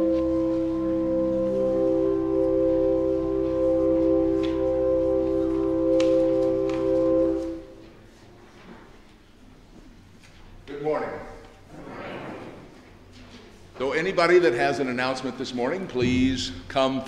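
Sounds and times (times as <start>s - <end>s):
pipe organ chords: 0.0s - 8.2s.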